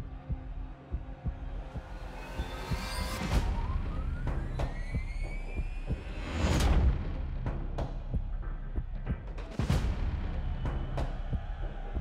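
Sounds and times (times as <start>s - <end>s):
heartbeat-like low thumps: 0.0s - 12.0s.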